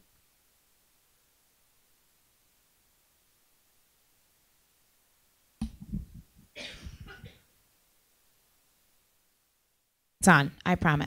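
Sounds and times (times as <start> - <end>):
microphone handling noise: 5.6 - 7.3
microphone thump: 5.6 - 7.3.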